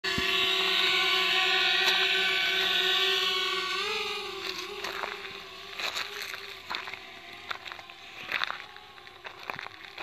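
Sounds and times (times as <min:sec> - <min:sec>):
drone propellers whining: 0:00.0 - 0:10.0.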